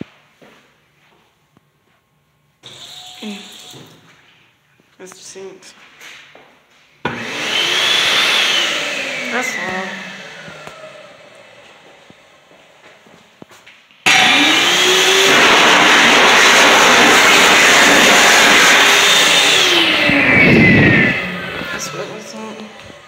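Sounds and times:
hand dryer blowing: 0:02.6 - 0:04.1, 0:07.1 - 0:12.8, 0:14.1 - 0:23.0
dryer motor whine: 0:02.6 - 0:04.2, 0:07.1 - 0:13.2, 0:14.1 - 0:23.0.

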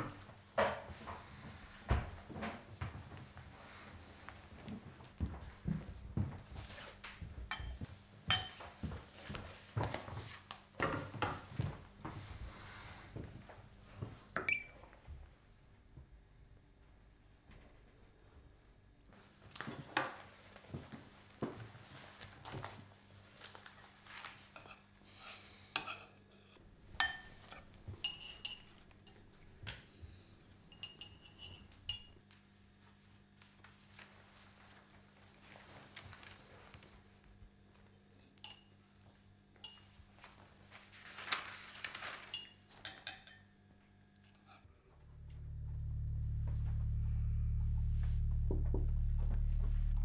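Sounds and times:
spoon clinking against ceramic bowl: 0:07.5 - 0:08.6, 0:27.0 - 0:29.2, 0:30.7 - 0:32.2, 0:42.4 - 0:43.5.

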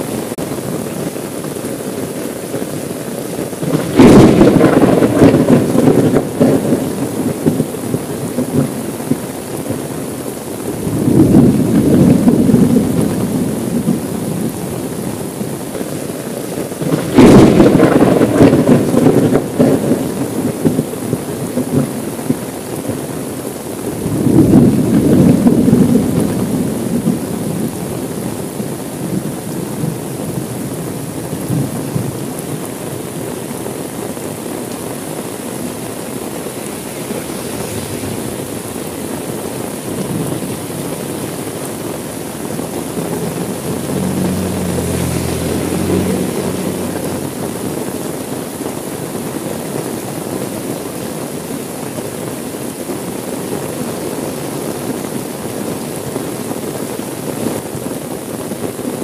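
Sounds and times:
heavy rain: 0:00.0 - 0:59.0
thunder rumbling: 0:03.5 - 0:16.1, 0:16.7 - 0:23.1, 0:23.8 - 0:49.3.

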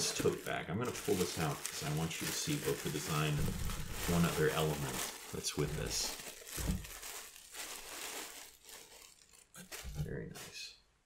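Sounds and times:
wrapping crinkling and rustling: 0:00.0 - 0:10.7.

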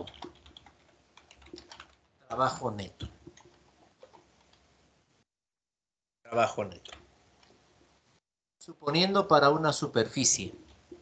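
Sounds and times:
computer keyboard typing: 0:00.0 - 0:02.1, 0:03.0 - 0:04.6.

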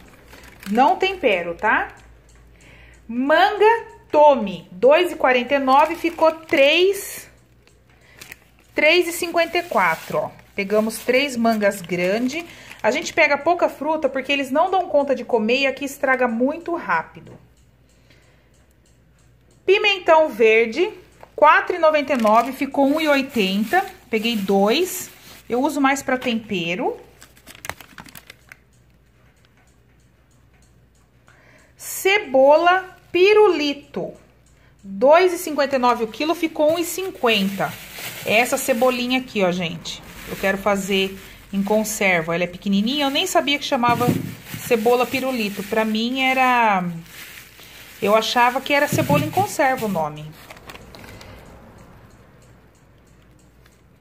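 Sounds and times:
plastic bags crinkling: 0:00.0 - 0:01.7, 0:05.3 - 0:13.4, 0:21.7 - 0:26.4, 0:27.0 - 0:28.6, 0:35.9 - 0:51.3
light ticks: 0:00.4 - 0:03.1, 0:17.4 - 0:19.7, 0:20.9 - 0:21.8, 0:27.0 - 0:31.8, 0:33.9 - 0:37.0, 0:50.5 - 0:54.0.

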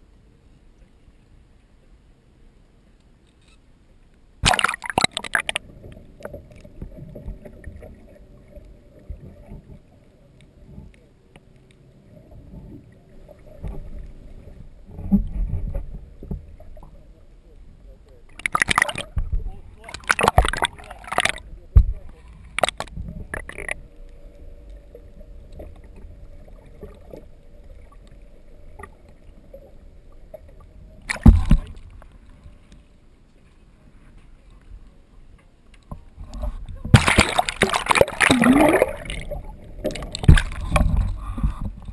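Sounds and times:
underwater rumble of moving water: 0:00.0 - 0:41.9
underwater knocks and clicks: 0:04.5 - 0:07.9, 0:14.8 - 0:16.9, 0:18.3 - 0:23.9, 0:31.0 - 0:32.1, 0:35.8 - 0:41.9.

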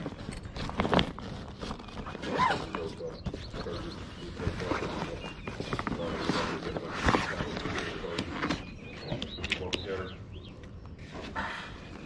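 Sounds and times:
fabric rustling: 0:00.0 - 0:08.7.

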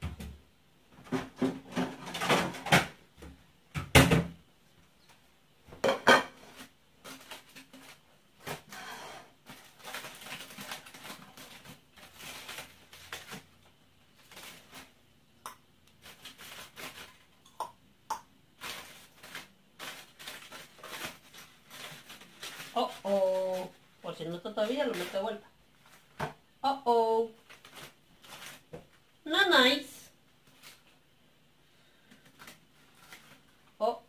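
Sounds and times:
dishes clattering: 0:05.8 - 0:06.4
aluminium foil crinkling: 0:06.4 - 0:15.0, 0:15.9 - 0:17.5, 0:18.5 - 0:26.2, 0:27.2 - 0:29.1, 0:30.4 - 0:31.0, 0:31.9 - 0:33.8.

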